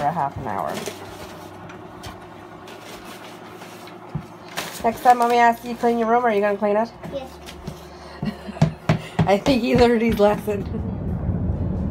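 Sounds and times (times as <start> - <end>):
paper and plastic rustling: 0.0 - 7.9
low steady hum: 0.0 - 11.9.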